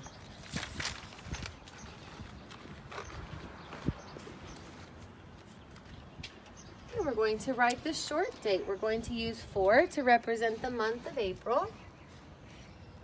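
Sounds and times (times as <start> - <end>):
paper sheet rustling: 0.2 - 5.0.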